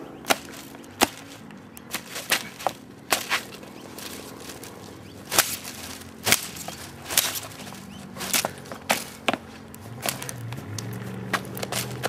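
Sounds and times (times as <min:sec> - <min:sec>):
sneakers stamping on leafy branch: 0:00.0 - 0:12.0.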